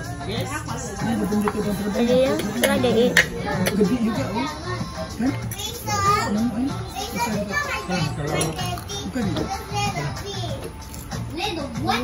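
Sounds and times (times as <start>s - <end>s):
background music: 0.0s - 12.0s
children's voices: 3.2s - 12.0s
high-pitched child's voice: 5.5s - 10.7s.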